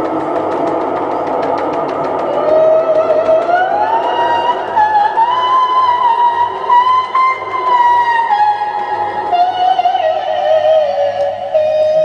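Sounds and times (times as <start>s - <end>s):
fast run of ticks: 0.0s - 4.5s.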